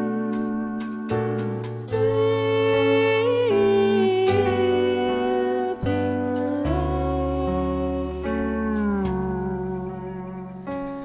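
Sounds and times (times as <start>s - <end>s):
sustained low bass note: 0.0s - 10.9s.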